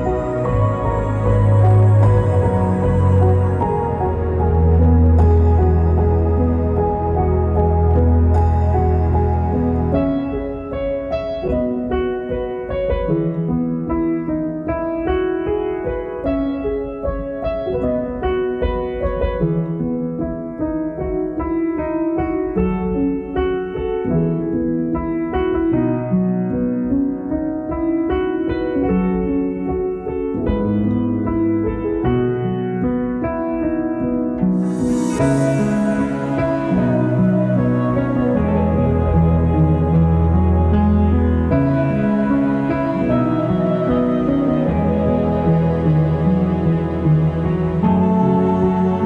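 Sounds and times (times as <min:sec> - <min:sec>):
piano music: 0:00.0 - 0:49.0.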